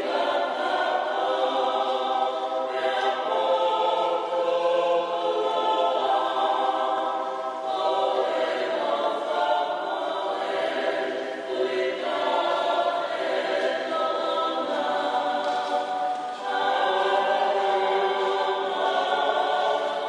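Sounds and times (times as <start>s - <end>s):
church choir singing: 0.0s - 20.0s.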